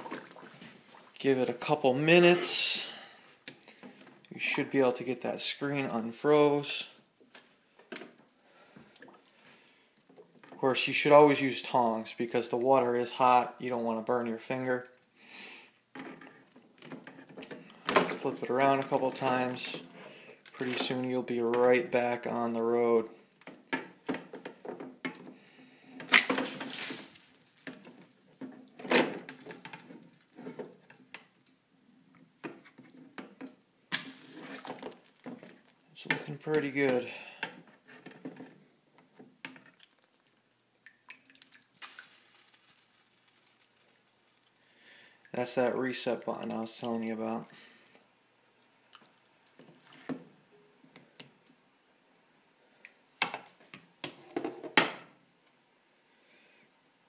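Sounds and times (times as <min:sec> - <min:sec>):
water splashing and dripping: 0:00.0 - 0:01.3, 0:26.3 - 0:28.4, 0:39.5 - 0:45.6.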